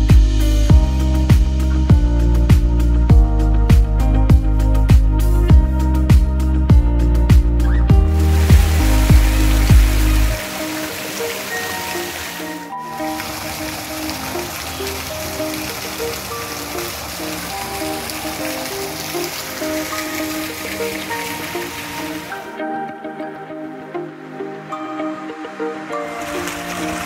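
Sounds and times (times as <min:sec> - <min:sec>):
background music: 0:00.0 - 0:27.0
fountain water splashing: 0:07.7 - 0:22.5, 0:25.8 - 0:27.0.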